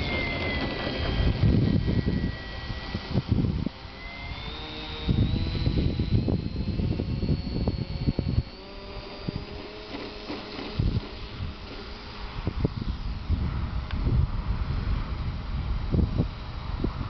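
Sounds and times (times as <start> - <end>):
model plane motor whining: 0.0 - 17.0
wind on microphone: 0.0 - 17.0.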